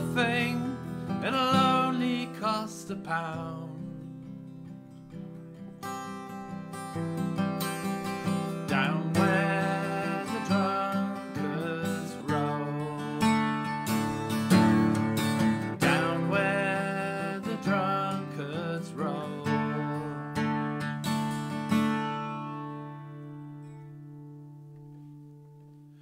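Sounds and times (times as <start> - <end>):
acoustic guitar strumming: 0.0 - 26.0.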